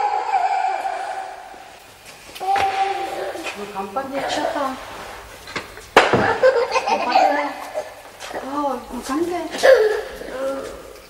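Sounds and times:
person laughing: 6.2s - 7.9s.

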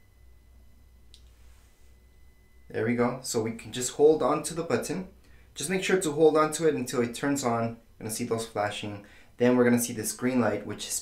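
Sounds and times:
faint steady high tone: 0.0s - 11.0s.

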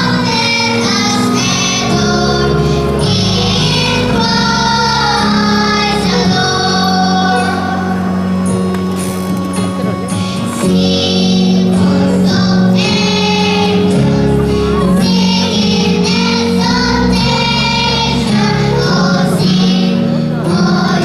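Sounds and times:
children's choir singing: 0.0s - 21.0s
instrumental accompaniment: 0.0s - 21.0s.

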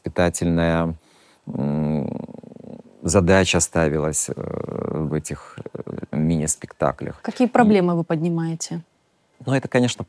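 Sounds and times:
man humming hesitantly: 1.4s - 3.0s, 4.4s - 6.3s.

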